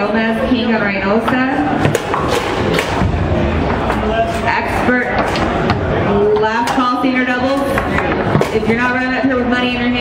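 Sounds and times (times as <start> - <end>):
low hall rumble: 0.0 - 10.0.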